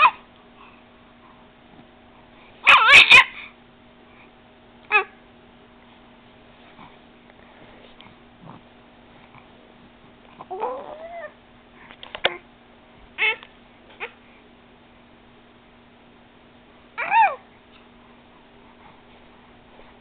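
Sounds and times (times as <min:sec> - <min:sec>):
baby making high-pitched noises: 0:02.6 - 0:03.4, 0:13.2 - 0:13.4, 0:17.0 - 0:17.4.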